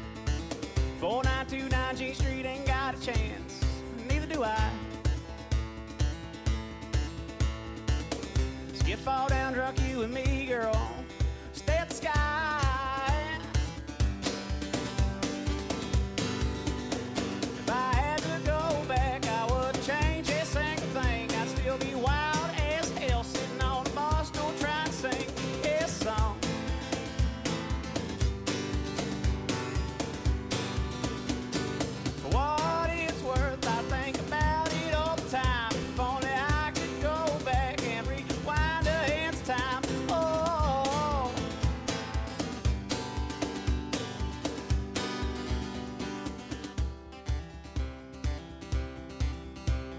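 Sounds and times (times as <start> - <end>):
country song on acoustic guitar: 0.0 - 49.9
person singing: 8.8 - 13.6, 17.6 - 26.7, 32.2 - 42.0
steady beat: 9.8 - 49.9.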